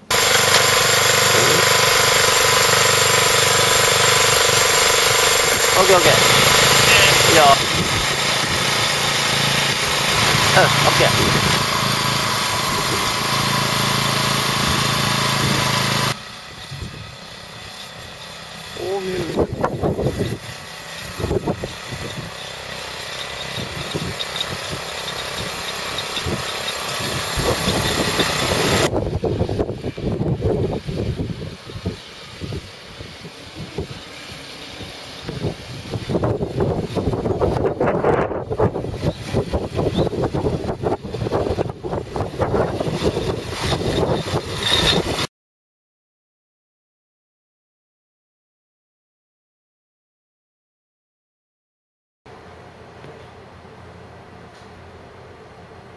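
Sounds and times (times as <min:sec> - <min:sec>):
small engine running: 0:00.0 - 0:45.3
clatter: 0:00.1 - 0:11.9.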